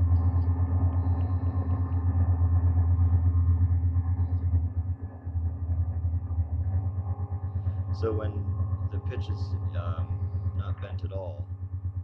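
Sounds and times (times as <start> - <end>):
guitar effects pedal drone: 0.0 - 12.0.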